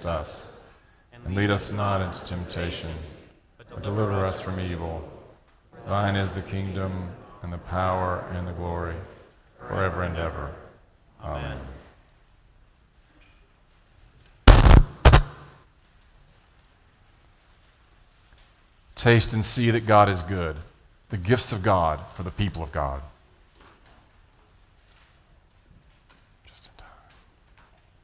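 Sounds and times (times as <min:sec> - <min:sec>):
faint whispering voice: 0:26.4 - 0:27.5.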